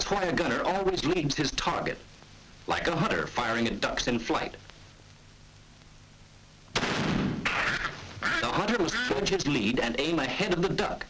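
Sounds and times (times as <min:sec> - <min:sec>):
shotgun blast: 0:06.7 - 0:07.9.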